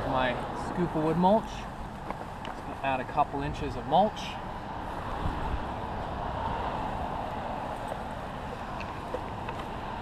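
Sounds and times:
wind rumble: 0:04.7 - 0:10.0.

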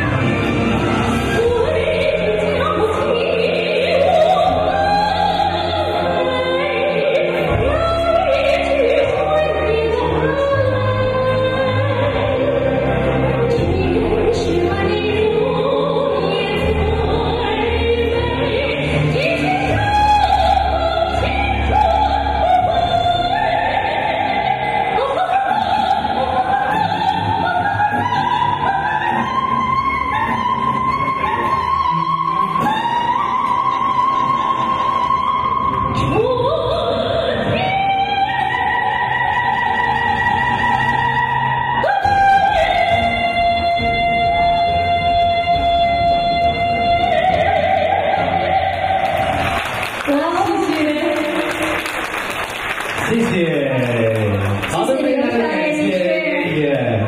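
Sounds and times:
woman singing with vibrato: 0:00.0 - 0:52.6
backing music: 0:00.0 - 0:57.0.

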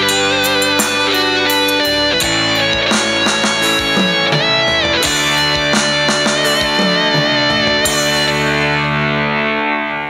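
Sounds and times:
electronic keyboard sustained chord: 0:00.0 - 0:10.0.

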